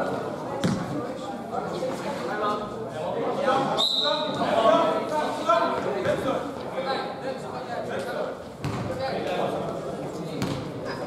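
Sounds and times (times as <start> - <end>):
basketball bouncing on floor: 0.6 - 0.8, 8.6 - 8.9.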